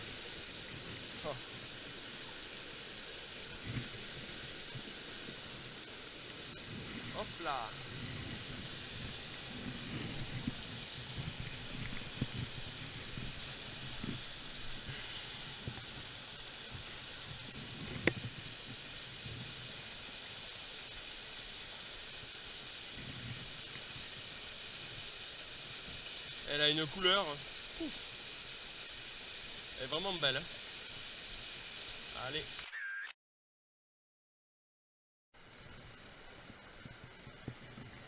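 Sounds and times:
small waterfall rushing: 0:00.0 - 0:32.6
sharp click: 0:32.6 - 0:33.1.

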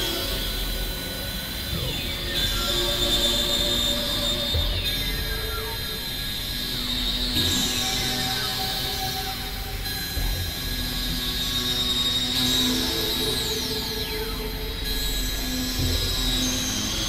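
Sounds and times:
layered drones and sustained tones: 0:00.0 - 0:17.0.

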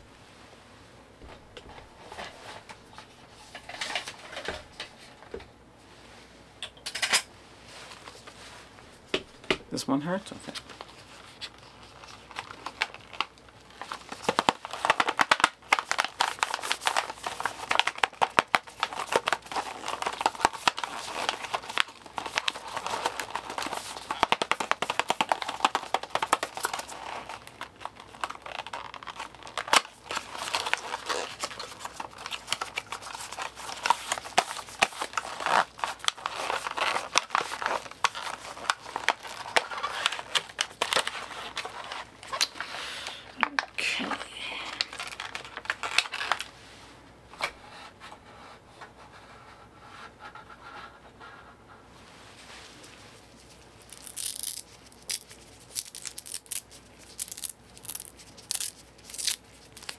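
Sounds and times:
packaging crinkling: 0:10.5 - 0:43.8, 0:44.6 - 0:46.6, 0:53.2 - 0:59.9.

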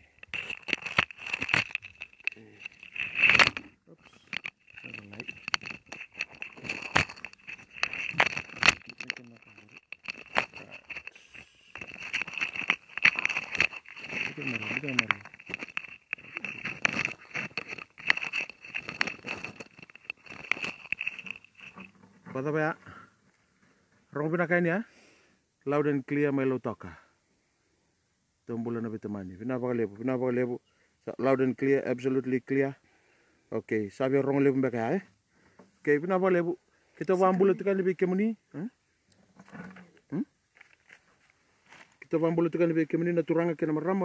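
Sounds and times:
microphone crackling and clicking: 0:00.0 - 0:22.4.

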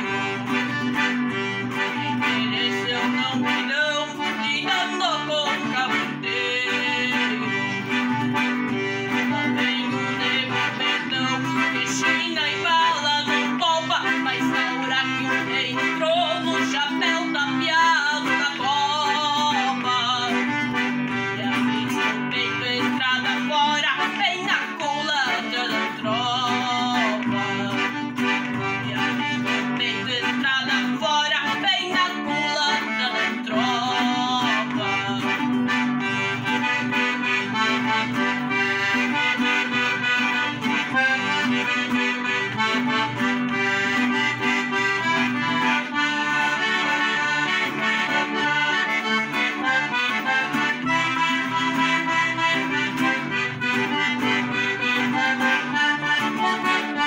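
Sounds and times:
accordion playing a tune: 0:00.0 - 0:57.0
acoustic guitar accompaniment: 0:00.0 - 0:57.0
boy singing: 0:02.2 - 0:07.7, 0:09.3 - 0:20.7, 0:21.3 - 0:35.6.

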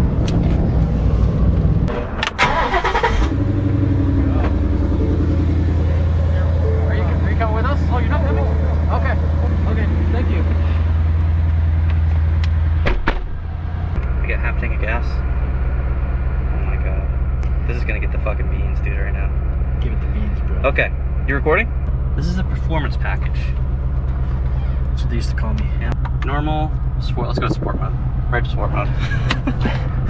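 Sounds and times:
car engine idling: 0:00.0 - 0:30.0
car engine cranking: 0:01.5 - 0:29.7
sharp knock: 0:12.8 - 0:13.4.

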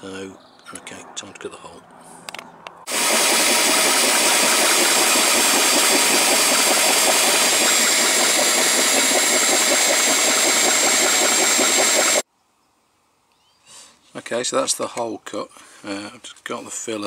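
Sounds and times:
power drill cutting with hole saw: 0:02.9 - 0:12.2.

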